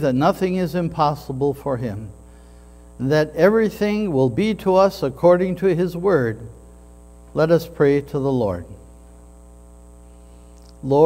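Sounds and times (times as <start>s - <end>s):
man speaking: 0.0s - 2.2s, 3.0s - 6.6s, 7.3s - 8.9s, 10.8s - 11.0s
electrical hum: 0.0s - 11.0s
high-pitched whine: 0.0s - 11.0s.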